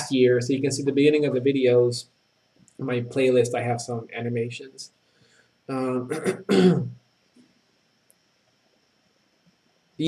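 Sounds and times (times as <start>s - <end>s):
man clearing his throat: 5.7s - 7.0s.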